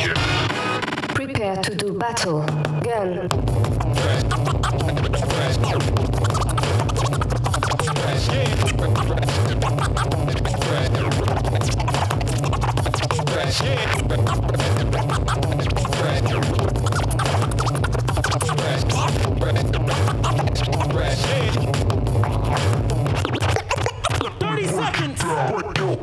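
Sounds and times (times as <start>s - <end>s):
record scratching: 0.0s - 1.8s, 2.6s - 26.0s
hip hop beat: 0.0s - 26.0s.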